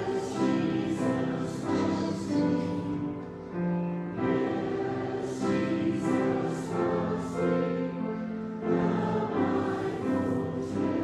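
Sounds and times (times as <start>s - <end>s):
congregation and children singing: 0.0s - 11.0s.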